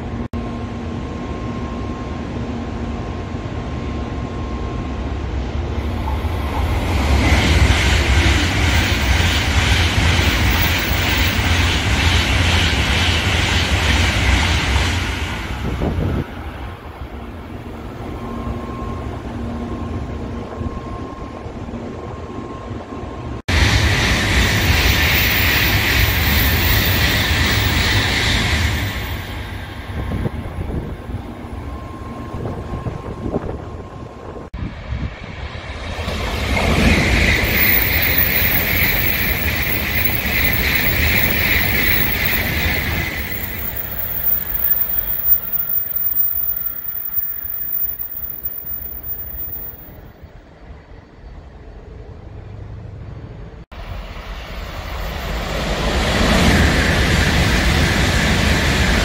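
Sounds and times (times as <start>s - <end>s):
train passing with rushing roar: 0.0s - 59.0s.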